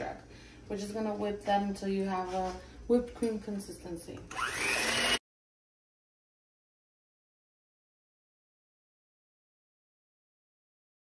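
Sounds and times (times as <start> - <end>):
electric hand mixer motor whine: 4.3 - 5.2.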